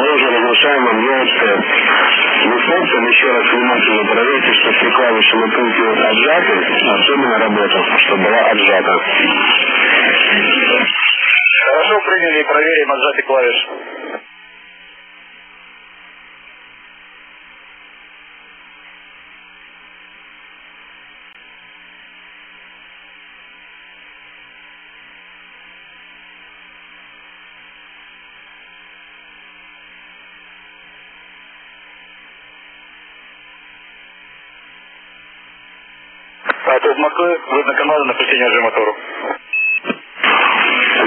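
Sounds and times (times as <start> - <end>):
radio channel hiss: 0.0 - 41.0
faint steady hum: 11.8 - 41.0.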